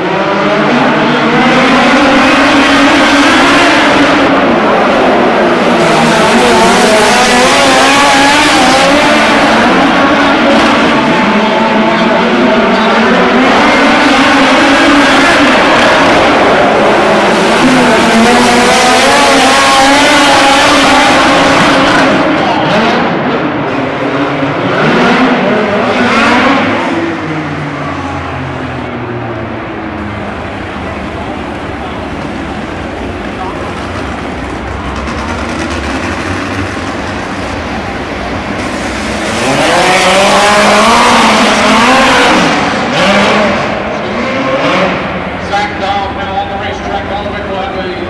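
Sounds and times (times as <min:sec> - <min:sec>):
race car engines revving: 0:00.0 - 0:48.0.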